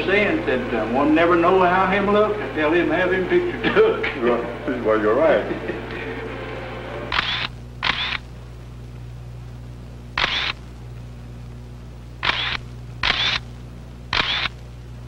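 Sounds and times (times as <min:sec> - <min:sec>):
steady low hum: 0:00.0 - 0:15.0
camera shutter clicks: 0:07.1 - 0:08.2, 0:10.2 - 0:10.6, 0:12.2 - 0:13.5, 0:14.1 - 0:14.6.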